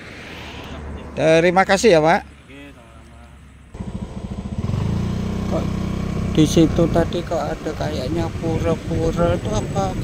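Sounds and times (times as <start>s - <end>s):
small motorcycle engine running: 3.8s - 7.9s.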